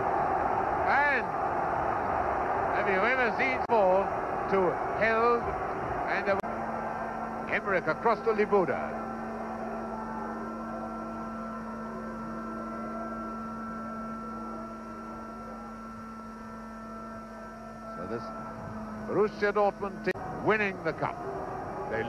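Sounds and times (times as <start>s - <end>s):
electrical hum: 0.0s - 22.0s.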